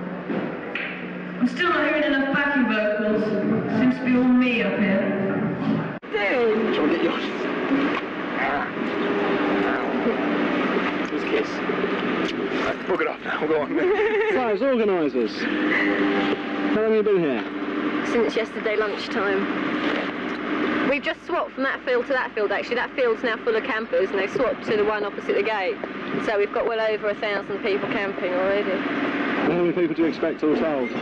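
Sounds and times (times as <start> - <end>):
motorcycle engines revving: 0.0 - 31.0
people talking: 1.4 - 7.5, 8.3 - 9.0, 9.6 - 10.2, 10.9 - 11.6, 12.2 - 16.1, 16.7 - 28.8, 29.4 - 31.0.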